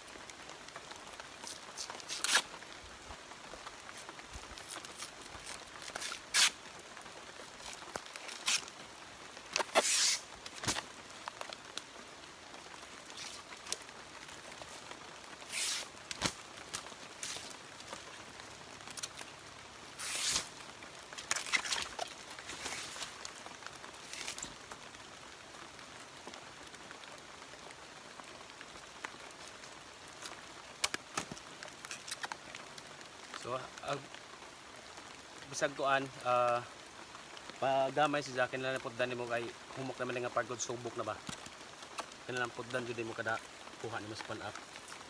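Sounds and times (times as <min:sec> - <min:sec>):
fibre strips tearing: 0:01.5 - 0:02.5, 0:04.6 - 0:06.6, 0:07.7 - 0:08.7, 0:09.6 - 0:10.8, 0:15.5 - 0:17.5, 0:20.0 - 0:20.5.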